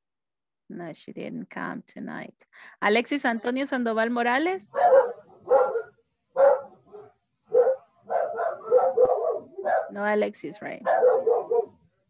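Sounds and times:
dog barking over video call: 4.7 - 11.9.

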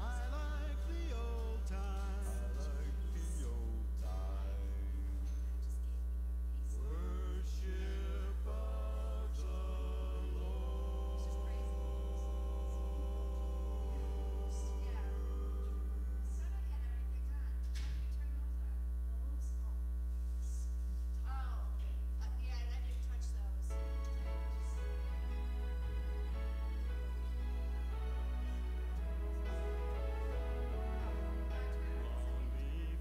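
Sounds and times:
faint music and singing: 0.0 - 19.4, 21.2 - 33.0
electrical mains hum: 0.0 - 33.0.

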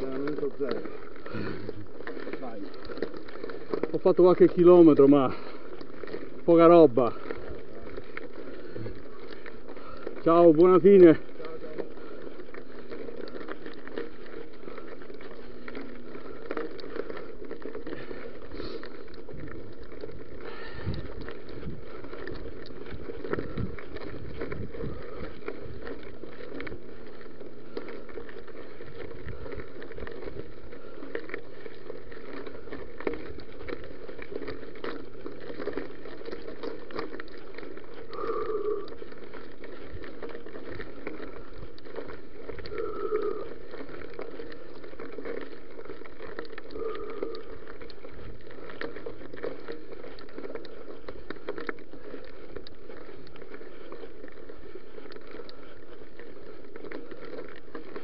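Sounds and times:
bike rattling and knocking: 0.0 - 58.0
bike tyres crunching on gravel: 0.0 - 58.0.

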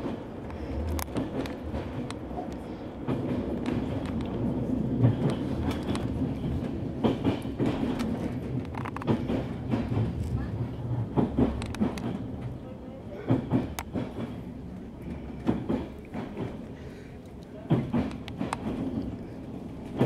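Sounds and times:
train rumbling on rails: 0.0 - 20.0.

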